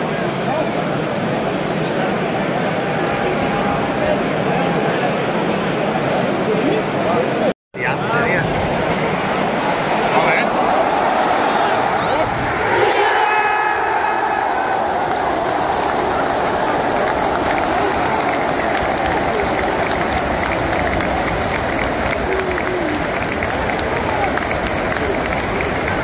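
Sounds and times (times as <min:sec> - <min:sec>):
stadium crowd cheering: 0:00.0 - 0:26.0.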